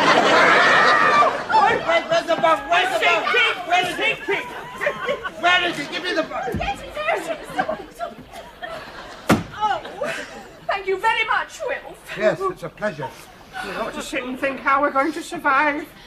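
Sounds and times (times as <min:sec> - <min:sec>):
voices talking and exclaiming: 0:00.0 - 0:16.0
dull thud: 0:09.2 - 0:09.6.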